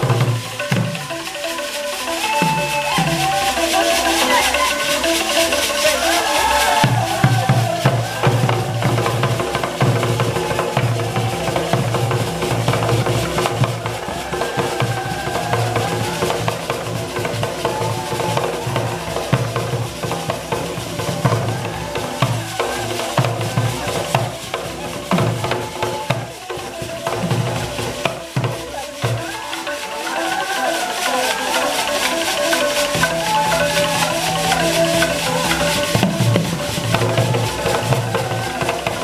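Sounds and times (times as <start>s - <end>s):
hand drums beating: 0.0s - 39.0s
wooden xylophone: 0.0s - 39.0s.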